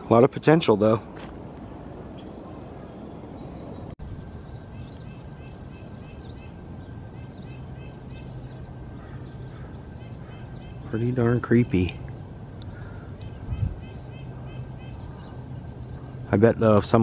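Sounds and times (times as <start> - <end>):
birds chirping: 0.0 - 17.0
outdoor background noise: 0.0 - 17.0.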